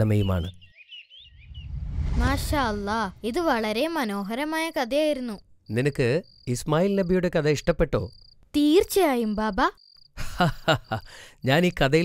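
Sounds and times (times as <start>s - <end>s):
voices talking: 0.0s - 0.6s
crickets chirping: 2.4s - 12.0s.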